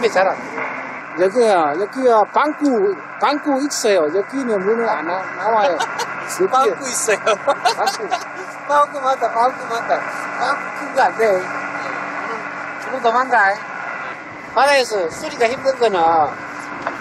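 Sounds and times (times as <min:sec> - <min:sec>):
boat engine droning: 0:00.0 - 0:17.0
men talking and laughing: 0:05.0 - 0:11.4.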